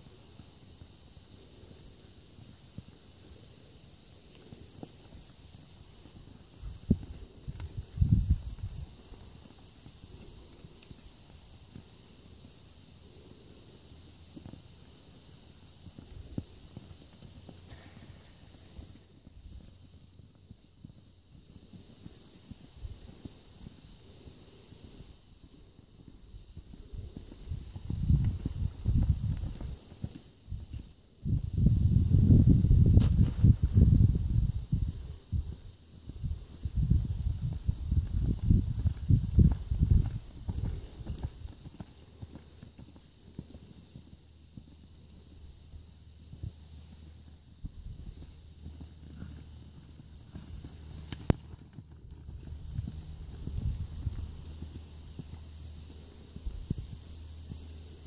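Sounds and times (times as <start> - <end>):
horse hoofbeats on sand: 0.0 - 58.0.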